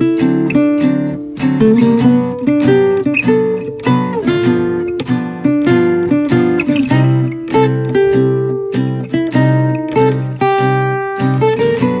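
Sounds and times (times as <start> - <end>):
acoustic guitar plucking: 0.0 - 12.0.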